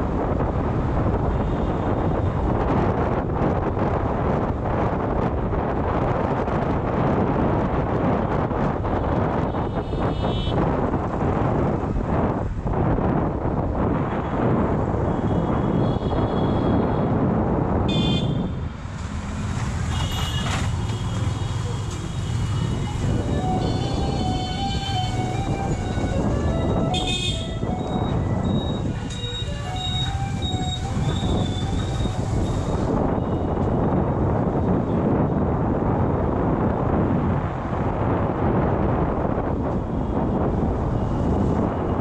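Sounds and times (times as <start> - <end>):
wind buffeting microphone: 0.0 - 42.0
car horn toots: 26.9 - 28.8.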